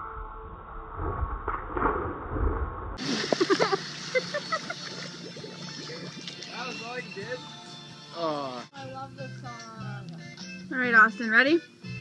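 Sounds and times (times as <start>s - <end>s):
splash into pool: 1.0s - 6.5s
people laughing: 3.0s - 5.1s.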